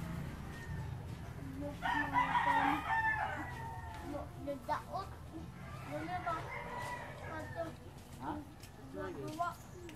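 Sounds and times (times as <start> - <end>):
rooster crowing: 1.8 - 4.1, 5.6 - 7.8.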